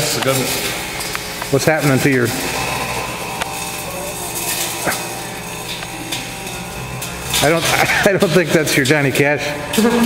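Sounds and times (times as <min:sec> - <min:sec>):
electrical arcing crackles: 0:00.0 - 0:10.0
microwave oven humming: 0:00.0 - 0:10.0.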